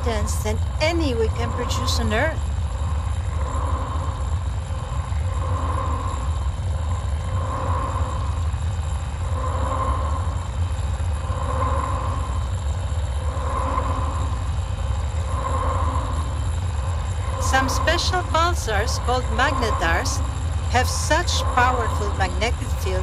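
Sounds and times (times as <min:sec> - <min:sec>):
deep steady rumble: 0:00.0 - 0:23.0
soft pulsing tone: 0:00.0 - 0:23.0.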